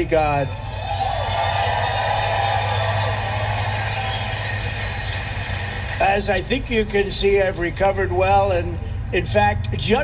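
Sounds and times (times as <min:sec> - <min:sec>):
audience applauding and cheering: 0:00.0 - 0:07.0.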